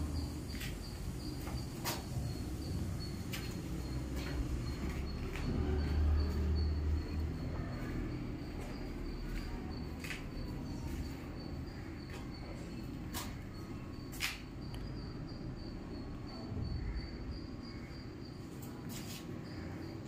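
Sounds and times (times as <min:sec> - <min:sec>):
cricket trilling: 0:00.0 - 0:20.0.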